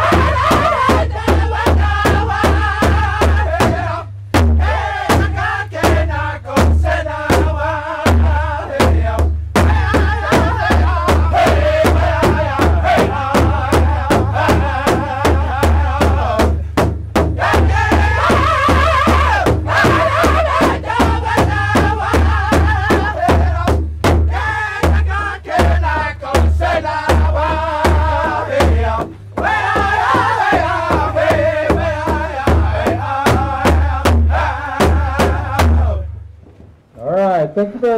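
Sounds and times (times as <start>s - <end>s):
men singing in a group: 0.0s - 16.7s, 17.4s - 36.1s
large drum beating: 0.0s - 36.8s.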